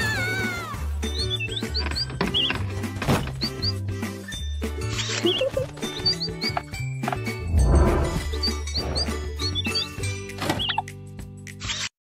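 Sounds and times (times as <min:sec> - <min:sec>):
background music: 0:00.0 - 0:11.6
bass line: 0:07.4 - 0:08.4.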